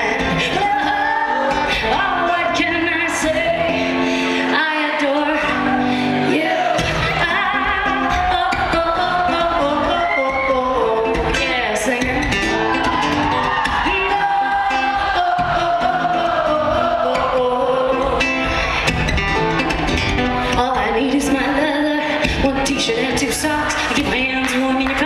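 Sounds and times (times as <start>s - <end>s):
woman singing: 0.0s - 12.8s, 13.6s - 18.5s, 20.4s - 25.0s
strummed acoustic guitar: 0.0s - 25.0s.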